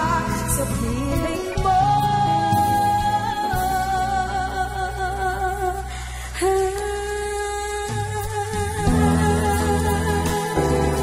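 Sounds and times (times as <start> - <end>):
woman singing with vibrato: 0.0 - 11.0.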